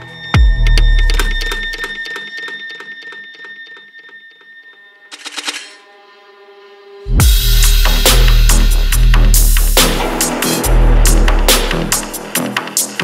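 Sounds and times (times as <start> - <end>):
dubstep track: 0.0 - 2.7, 7.1 - 13.0
deep bass hit: 7.1 - 12.3.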